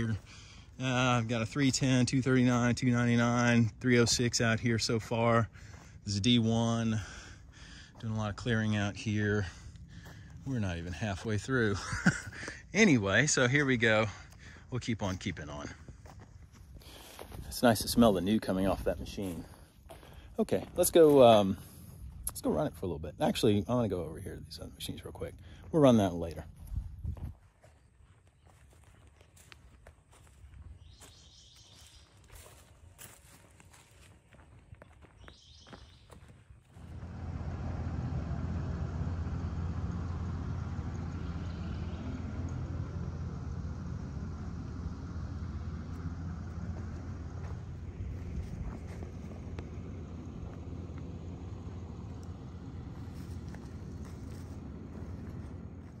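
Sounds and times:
footsteps crunching on ground: 0.0 - 12.6, 14.1 - 22.8, 25.3 - 37.3, 43.1 - 56.0
diesel engine idling: 0.0 - 56.0.

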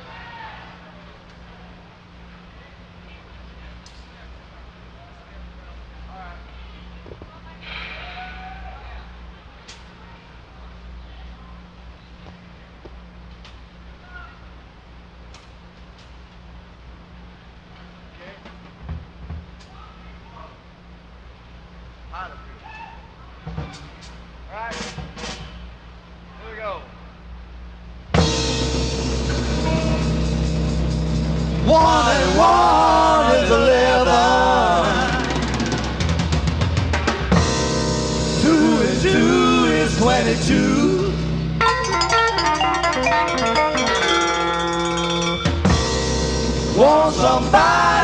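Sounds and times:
crowd whooping yell: 0.0 - 1.0, 8.0 - 9.1, 31.6 - 35.4
low electrical hum: 0.0 - 48.0
sound system hum: 27.2 - 48.0
rock band playing loud chord: 28.1 - 48.0.

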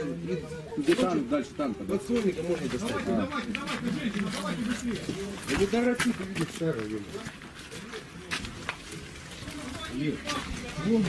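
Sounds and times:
people talking in background: 0.0 - 11.0.

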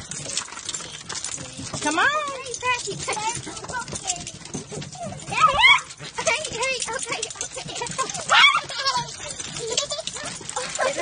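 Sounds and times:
dogs whining: 4.4 - 11.0.

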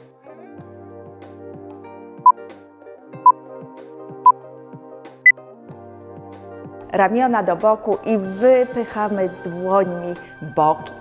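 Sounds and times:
background music with light beat: 0.0 - 11.0.

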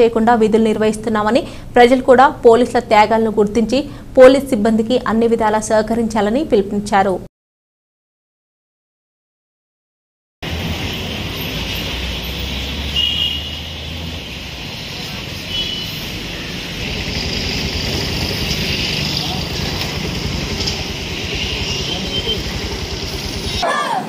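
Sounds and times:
low engine rumble: 10.4 - 23.6
road traffic noise: 10.4 - 23.7.

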